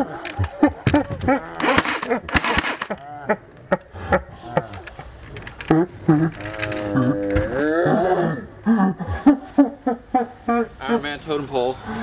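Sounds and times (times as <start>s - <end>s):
sharp clicks: 0.2s - 3.9s, 4.6s - 7.4s.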